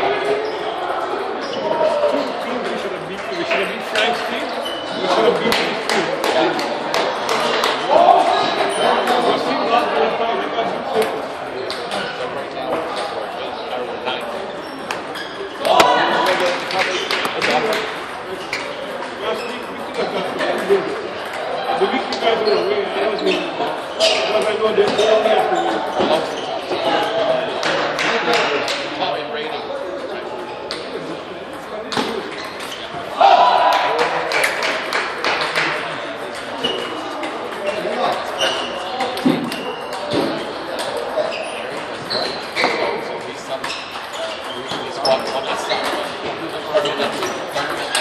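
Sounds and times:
background chatter of voices: 0.0s - 48.0s.

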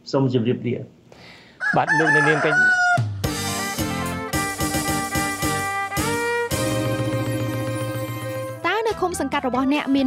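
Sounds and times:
rooster crowing: 1.6s - 3.2s
man speaking: 1.7s - 2.7s.

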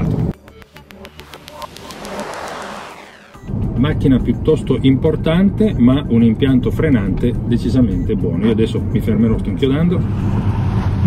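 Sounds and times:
road and tyre noise: 0.0s - 3.8s, 6.3s - 11.0s
car driving past: 9.9s - 11.0s.

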